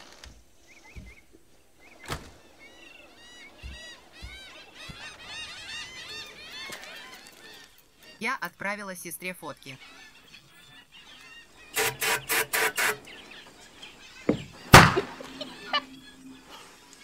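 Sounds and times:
flock of birds calling: 0.0 - 17.0
footsteps on wooden deck: 0.1 - 6.8, 13.5 - 15.4.

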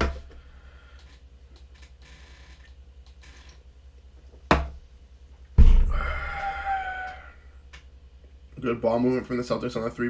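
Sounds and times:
short thump: 5.6 - 6.0
pulsing low hum: 5.6 - 7.6.

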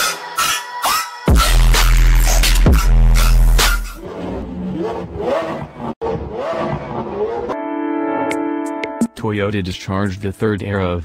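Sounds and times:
car engine revving: 1.3 - 7.6.

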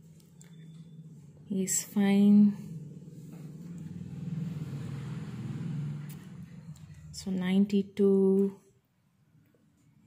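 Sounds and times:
low steady rumble: 0.0 - 8.0.

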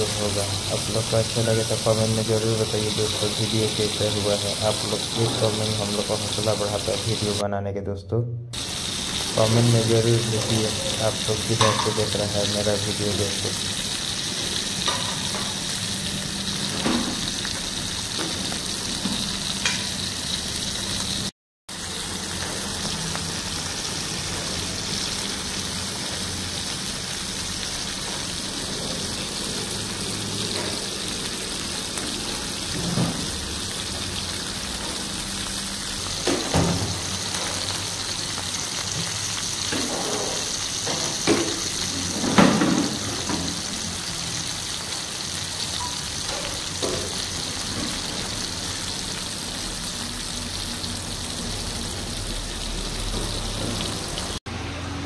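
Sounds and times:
fish sizzling in hot oil: 0.0 - 7.4, 8.6 - 54.4.

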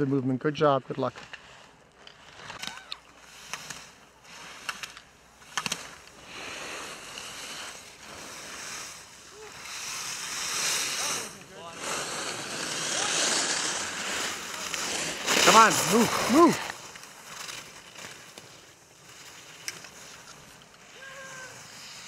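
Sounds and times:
skis carving on snow: 0.0 - 22.0.

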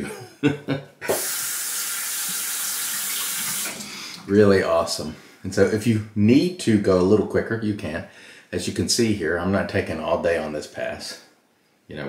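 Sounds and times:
tap water running into sink: 1.1 - 3.9.

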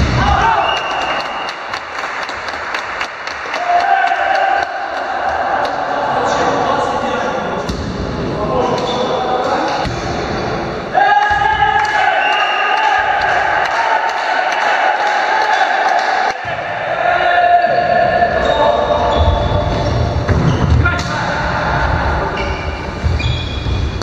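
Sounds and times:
players' voices: 3.4 - 24.0.

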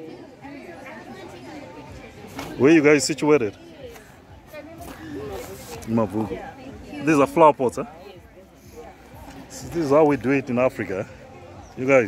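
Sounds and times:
background chatter: 0.0 - 12.0.

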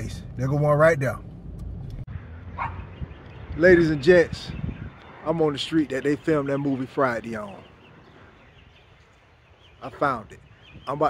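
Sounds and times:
low background rumble: 0.0 - 3.1
dog bark: 2.6 - 2.9.

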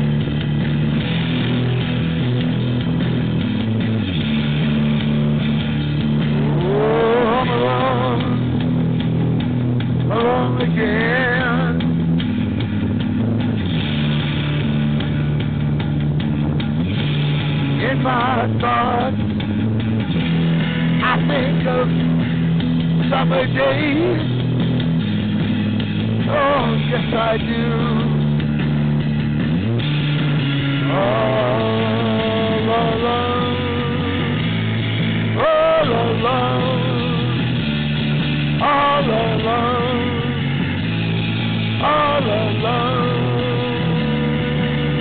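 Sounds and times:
bass line: 0.0 - 45.0
electric guitar: 0.0 - 45.0
rock band playing: 0.0 - 45.0.

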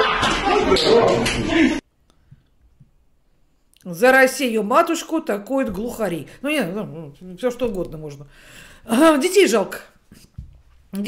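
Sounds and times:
woman speaking: 3.8 - 10.0.

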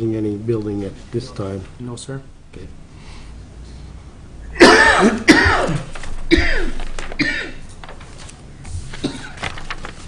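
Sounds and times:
person coughing: 4.6 - 7.6, 9.0 - 9.4.

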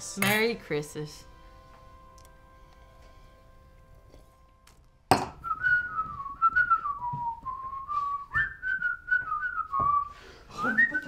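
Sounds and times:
person whistling a tune: 5.4 - 11.0.

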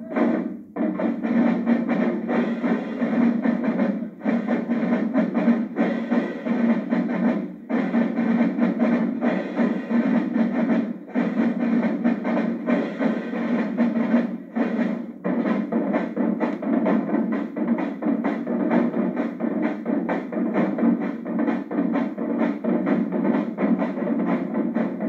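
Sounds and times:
snare drumline playing: 0.0 - 25.0.

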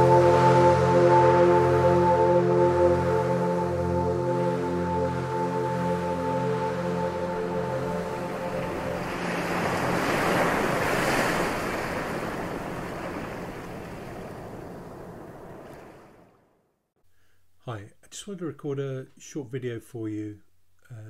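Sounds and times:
intro music with held chords: 0.0 - 10.5.

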